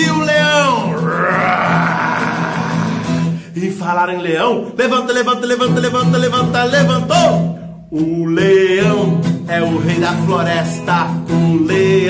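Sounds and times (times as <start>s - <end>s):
person imitating lion roar: 0.8s - 3.4s.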